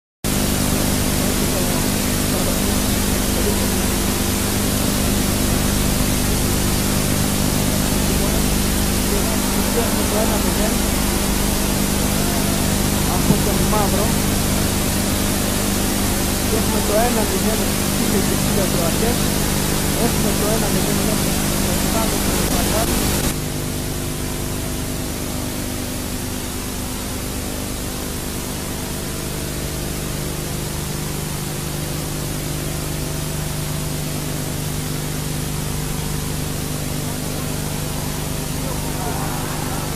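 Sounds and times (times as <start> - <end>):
low hum: 0.3 - 23.4, 34.8 - 39.9
videotape hiss: 0.3 - 23.4
stadium crowd noise: 0.4 - 23.4, 36.5 - 39.9.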